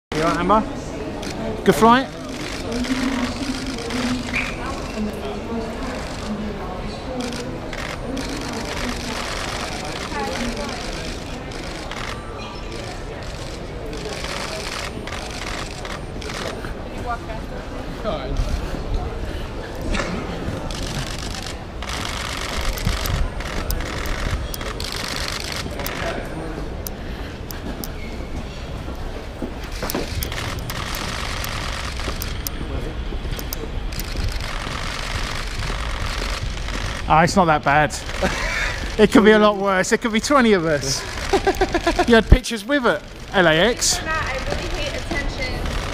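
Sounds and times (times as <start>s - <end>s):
crowd chatter: 0.1s - 45.9s
camera shutter clicks: 29.7s - 32.6s.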